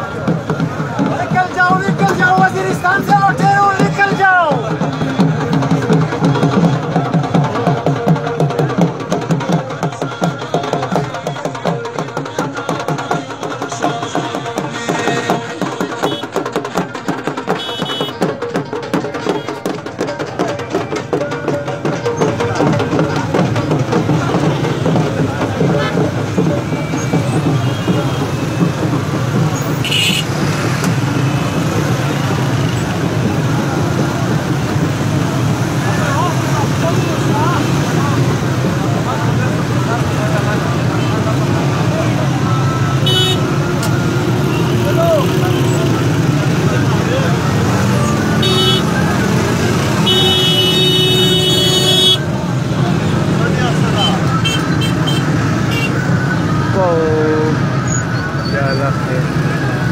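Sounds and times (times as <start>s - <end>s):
marching crowd voices: 0.0s - 59.9s
vehicle horns tooting: 14.2s - 16.5s, 17.5s - 18.3s, 26.7s - 28.9s, 29.6s - 30.6s, 42.3s - 46.1s, 47.6s - 52.3s, 53.9s - 56.2s.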